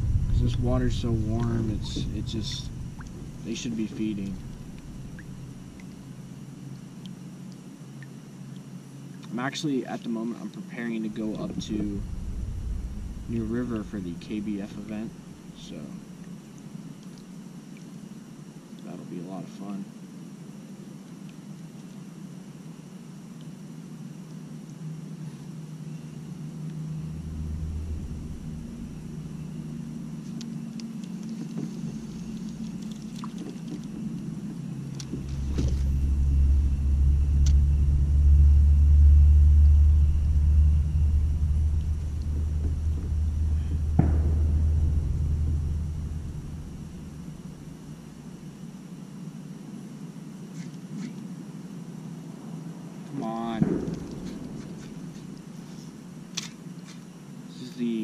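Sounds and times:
deep low rumble: 0.0s - 6.8s, 10.9s - 16.3s, 25.9s - 48.8s, 53.6s - 55.6s.

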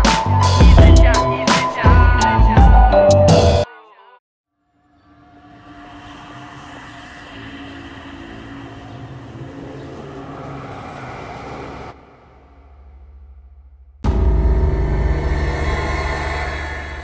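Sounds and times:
engine-like drone with held tones: 5.0s - 17.0s.

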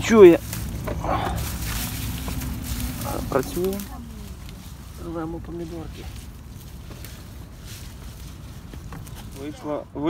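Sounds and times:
low microphone rumble: 0.0s - 9.2s
plants rustling and crackling: 0.0s - 10.0s.

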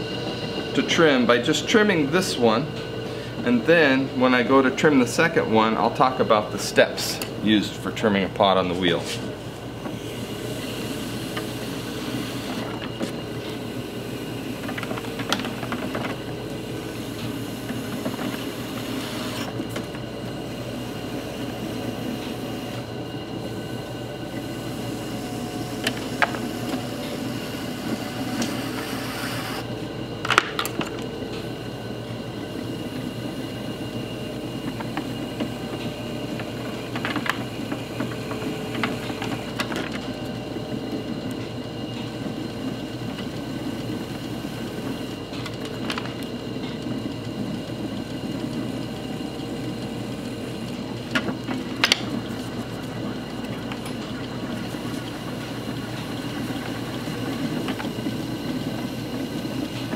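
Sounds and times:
potter's wheel motor hum: 0.0s - 59.9s.

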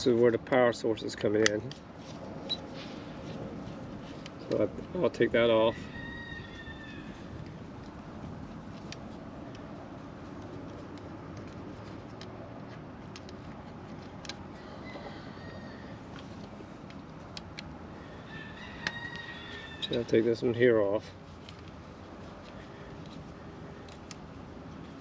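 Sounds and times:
steady low rumble: 0.0s - 14.6s.

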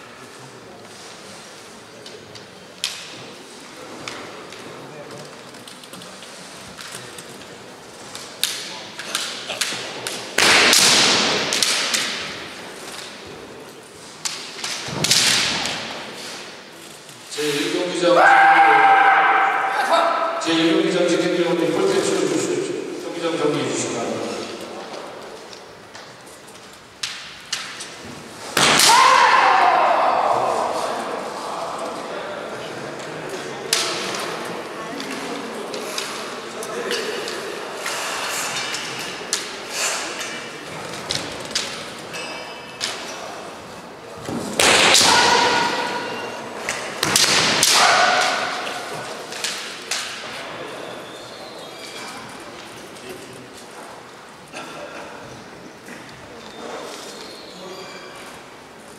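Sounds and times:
bamboo swords clashing: 8.2s - 13.2s, 27.0s - 30.3s, 44.3s - 50.3s
loud shouts: 18.0s - 20.5s, 28.6s - 31.3s, 44.8s - 46.3s, 47.6s - 48.9s.

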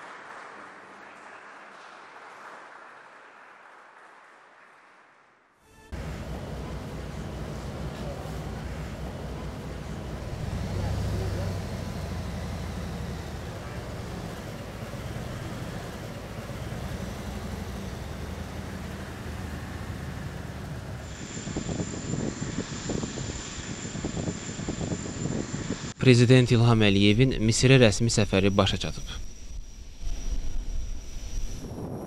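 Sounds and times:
vehicle low rumble: 5.9s - 26.0s
indistinct voices: 6.0s - 21.1s.

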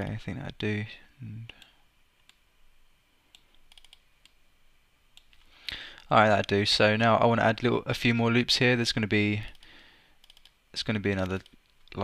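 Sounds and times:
computer mouse clicks: 3.3s - 4.4s, 10.2s - 10.6s.

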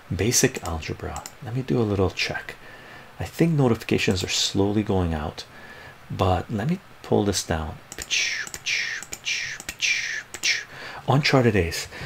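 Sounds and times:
man whispering: 8.0s - 11.9s.

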